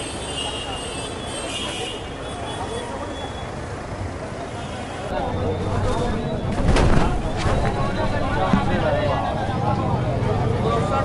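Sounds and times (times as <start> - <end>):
crowd voices: 0.0 - 11.0
traffic noise: 0.0 - 11.0.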